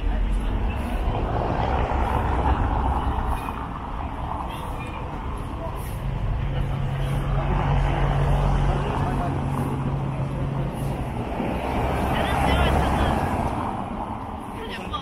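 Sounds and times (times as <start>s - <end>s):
cars driving on cobblestones: 0.0s - 15.0s
vehicle engine humming: 0.0s - 15.0s
voices of passers-by: 0.0s - 15.0s.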